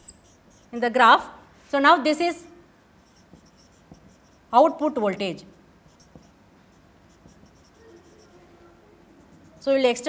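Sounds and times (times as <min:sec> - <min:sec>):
marker pen scratching on whiteboard: 0:00.0 - 0:01.0, 0:03.0 - 0:04.6, 0:05.5 - 0:10.0.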